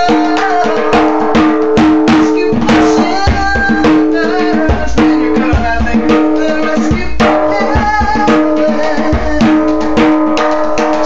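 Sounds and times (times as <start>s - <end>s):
djembe played by hand: 0.0s - 11.0s.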